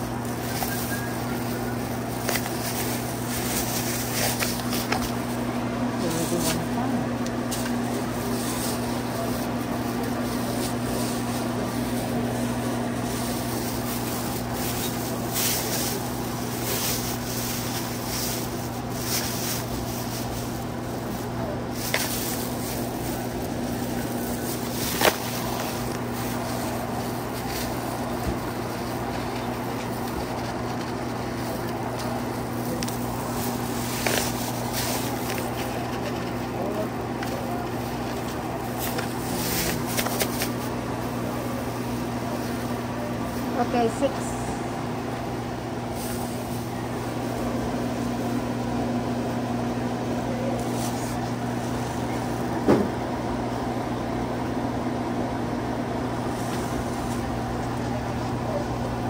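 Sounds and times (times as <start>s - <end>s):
plastic bag crinkling: 0.0s - 44.0s
low electrical hum: 0.0s - 59.0s
indistinct voices: 4.6s - 47.8s.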